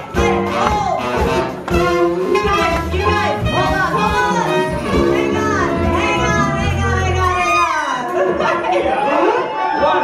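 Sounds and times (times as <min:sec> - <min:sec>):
jazz band playing: 0:00.0 - 0:08.3
bowed fiddle: 0:03.5 - 0:07.8.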